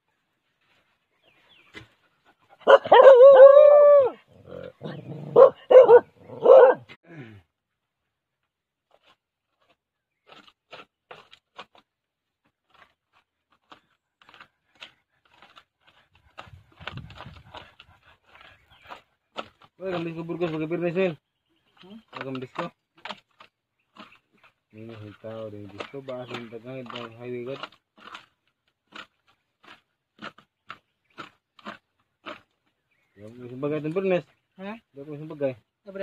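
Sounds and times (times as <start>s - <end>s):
dog barking: 2.6s - 3.5s, 5.3s - 6.9s
dog yelping: 2.6s - 4.2s, 4.9s - 6.9s.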